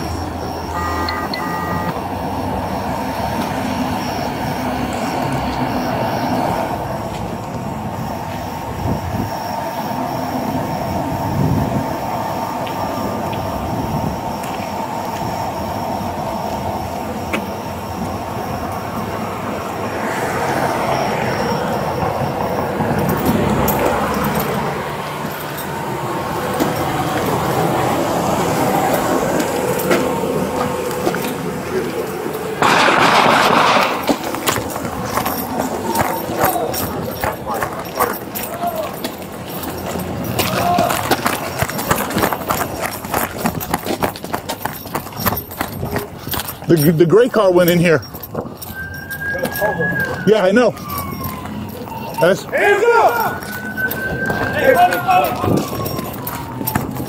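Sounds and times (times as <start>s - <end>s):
footsteps: 16.9s - 57.0s
duty gear rattling: 22.4s - 27.6s, 28.9s - 57.0s.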